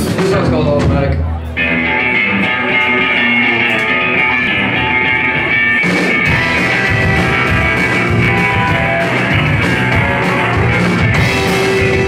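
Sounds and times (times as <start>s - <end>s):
live rock band: 0.0s - 12.0s
electric guitars ringing chords: 1.5s - 12.0s.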